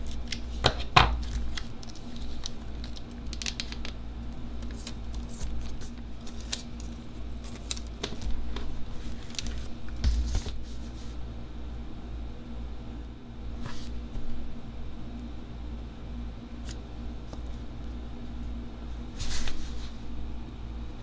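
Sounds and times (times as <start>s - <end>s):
sticker sheets rustling and crinkling: 0.0s - 4.0s, 4.6s - 11.2s.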